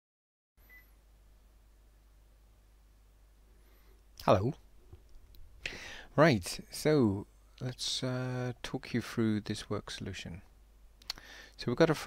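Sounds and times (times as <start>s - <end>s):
low steady hum: 0.6s - 12.0s.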